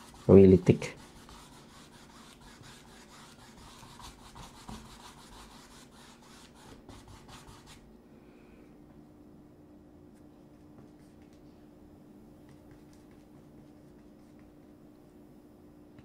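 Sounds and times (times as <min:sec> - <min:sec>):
paintbrush scrubbing on canvas: 0:00.0 - 0:07.8.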